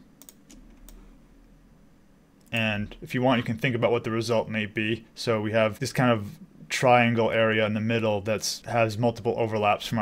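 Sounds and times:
low room hiss: 0.0s - 10.0s
computer mouse clicks: 0.2s - 1.0s.

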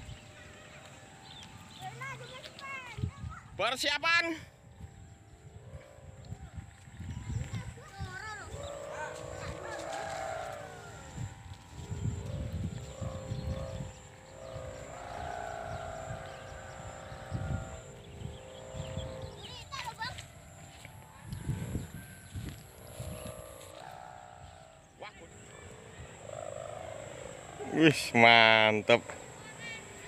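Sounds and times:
wind rumbling on microphone: 1.4s - 3.6s, 4.5s - 30.0s
distant voices calling out: 7.2s - 22.0s, 22.6s - 30.0s.

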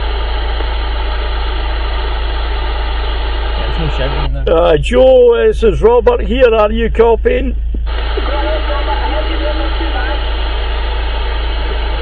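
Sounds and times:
radio static hiss: 0.0s - 12.0s
faint voice over radio: 8.0s - 10.3s.

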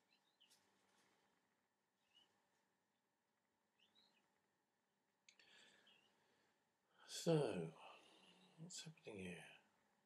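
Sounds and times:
faint high-pitched chirp: 0.0s - 0.6s, 2.0s - 2.4s, 3.8s - 4.3s.

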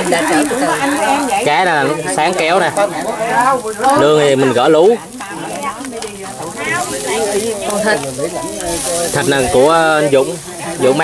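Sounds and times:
meat sizzling on a charcoal grill: 0.0s - 11.0s
people talking: 0.0s - 11.0s.

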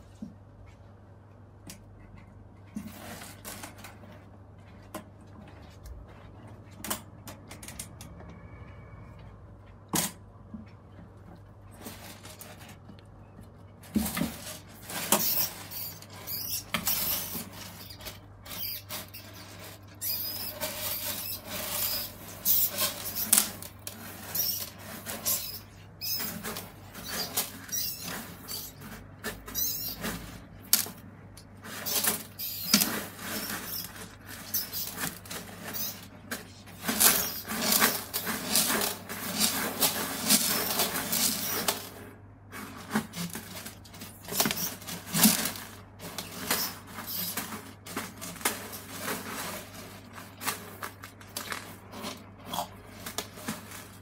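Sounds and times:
lizard crunching and scraping prey: 13.8s - 54.0s.

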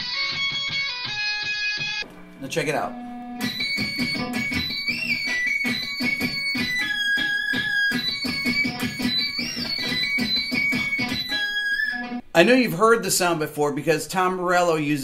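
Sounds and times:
electric guitar with pitch sweeps: 0.0s - 12.2s.

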